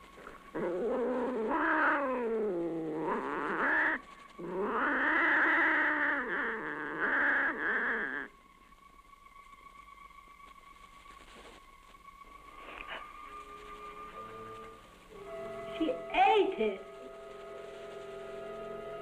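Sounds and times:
cat yowling: 0.6s - 8.3s.

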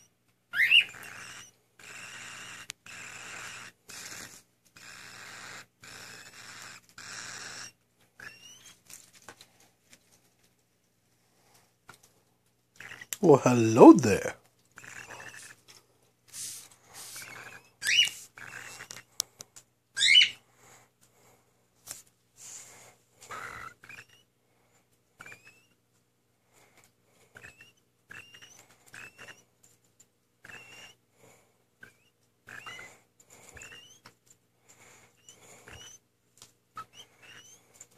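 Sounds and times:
bird chick raspy calls: 0.6s - 8.8s, 23.3s - 24.3s, 31.8s - 34.1s, 34.8s - 36.0s.

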